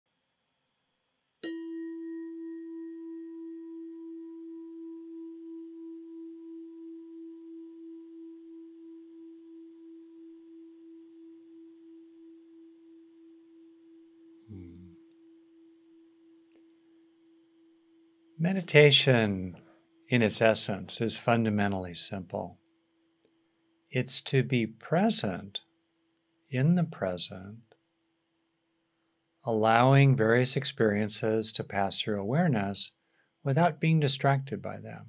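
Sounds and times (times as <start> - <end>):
meditation bell ringing: 1.4 - 16.5
soft low sound: 1.4 - 22.8.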